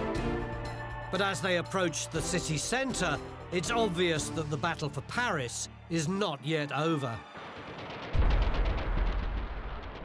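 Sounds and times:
background music: 0.0 - 7.4
gunfire crackle: 7.3 - 10.0
low boom: 7.7 - 10.0.

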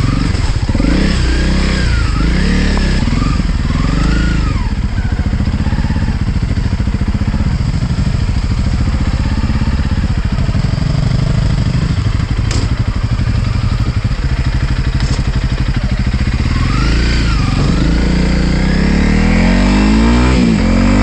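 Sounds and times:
motorcycle engine revving: 0.0 - 21.0.

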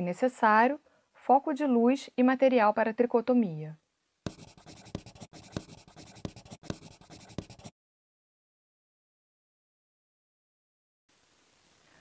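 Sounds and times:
pen writing on paper: 4.3 - 7.7.

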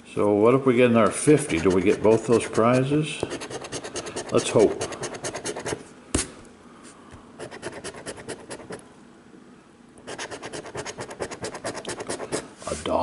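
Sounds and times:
coin scratching lottery ticket: 1.4 - 5.8, 7.4 - 8.8, 10.1 - 12.4.

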